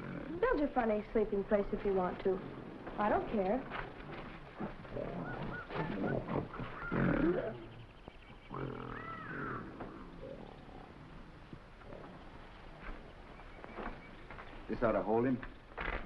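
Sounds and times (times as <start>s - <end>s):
wild animal roars and calls: 0.0s - 0.4s, 3.9s - 13.0s.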